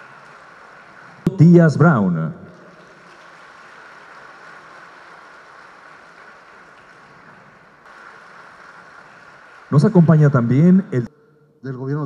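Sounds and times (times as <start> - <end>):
crowd applause: 0.0 - 11.1.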